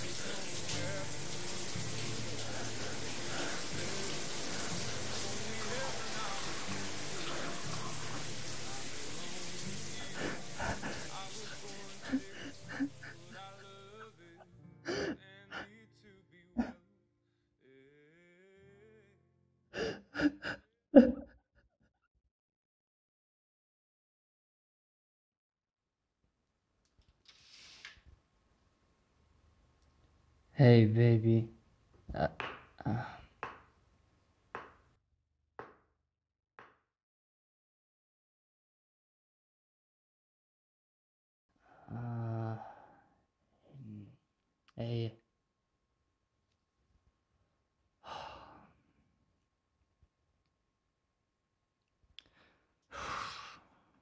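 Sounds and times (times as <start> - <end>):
man sobbing: 8.9 - 16.8, 19.7 - 21.6, 32.1 - 33.3, 41.9 - 42.8
person sighing: 14.8 - 15.8, 19.8 - 21.2, 32.1 - 33.4, 41.6 - 43.0, 43.6 - 44.2, 48.0 - 48.8, 52.2 - 53.8
gasping breaths: 52.2 - 54.0.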